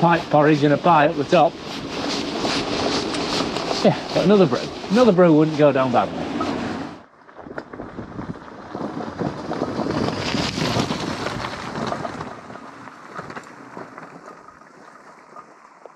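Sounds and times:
wind noise on microphone: 0:00.0 - 0:15.5
bike tyres crunching on stones: 0:00.0 - 0:15.9.

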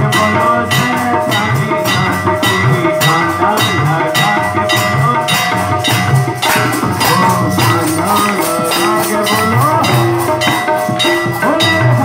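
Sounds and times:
devotional music with drums: 0:00.0 - 0:12.0
sustained tones: 0:00.1 - 0:12.0
hand clapping: 0:05.9 - 0:12.0.

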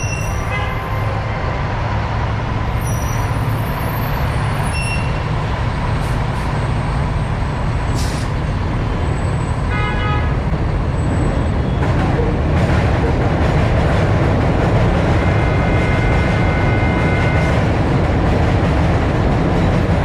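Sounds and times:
truck engine rumbling: 0:00.0 - 0:09.7
city traffic: 0:00.0 - 0:20.0
short hiss: 0:08.0 - 0:08.3
horn toot: 0:15.2 - 0:17.7.

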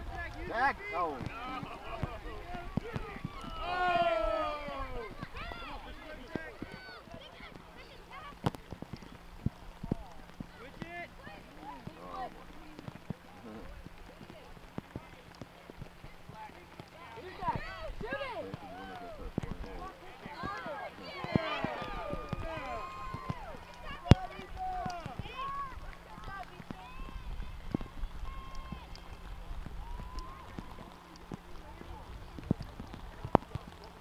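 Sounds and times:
voices calling and shouting: 0:00.0 - 0:34.0.

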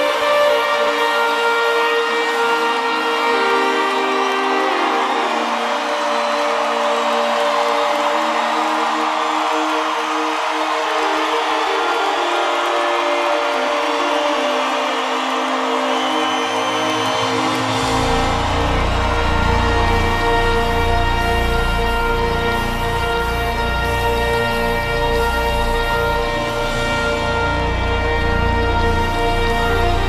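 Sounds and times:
live band holding chords: 0:11.0 - 0:30.0.

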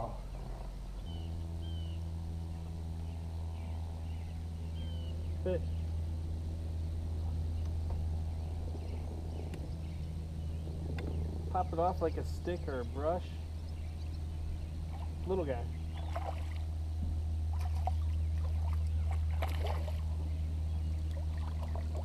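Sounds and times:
electric trolling motor humming: 0:00.0 - 0:22.0.

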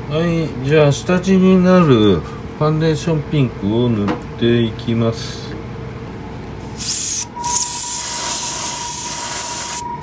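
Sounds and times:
puff of air: 0:06.7 - 0:09.8
airbrush spraying hiss: 0:06.8 - 0:09.8.

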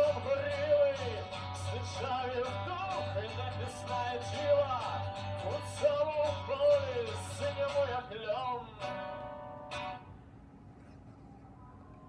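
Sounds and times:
man singing: 0:00.0 - 0:09.2
acoustic guitar strums: 0:00.0 - 0:10.1.

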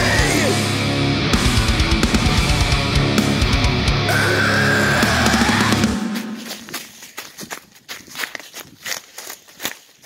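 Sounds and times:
footsteps crunching through dry leaves: 0:05.2 - 0:10.0.

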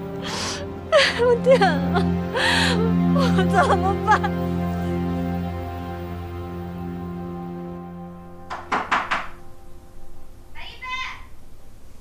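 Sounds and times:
high-pitched voice calling out: 0:10.6 - 0:11.3.

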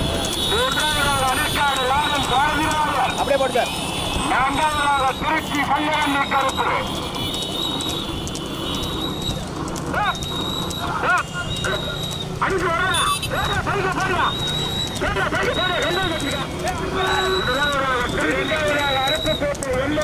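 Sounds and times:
motorcycle engines droning: 0:00.0 - 0:20.0
man shouting commentary: 0:10.8 - 0:20.0.

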